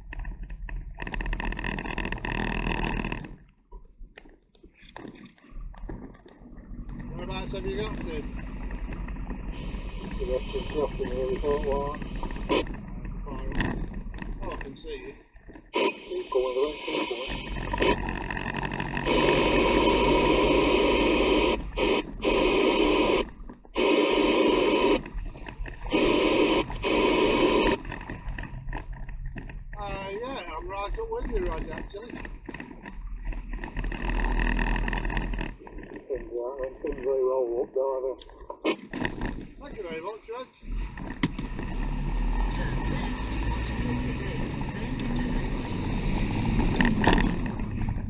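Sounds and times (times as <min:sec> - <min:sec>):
radio static bursts: 0:00.0 - 0:03.5, 0:04.8 - 0:48.0
low engine rumble: 0:06.4 - 0:15.3, 0:40.6 - 0:48.0.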